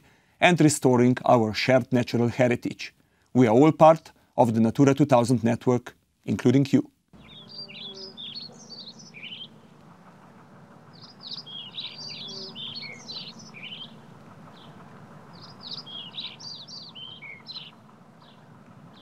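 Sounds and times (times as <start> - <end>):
small bird chirping: 7.2 - 9.8, 10.8 - 19.0
faint low hum: 7.2 - 19.0.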